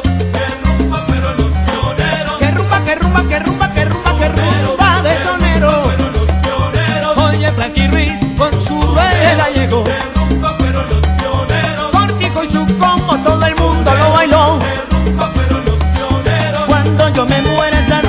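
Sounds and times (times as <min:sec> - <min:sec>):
instrumental salsa music: 0:00.0 - 0:18.0.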